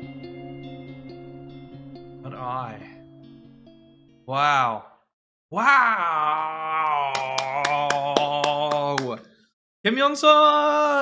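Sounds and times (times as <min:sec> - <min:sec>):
man groaning: 0:05.5 - 0:08.9.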